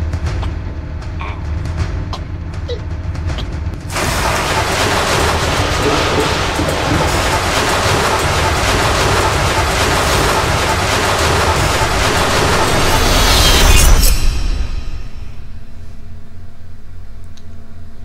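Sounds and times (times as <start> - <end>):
film music score: 0.0 - 18.0
churning splashing water: 3.8 - 13.0.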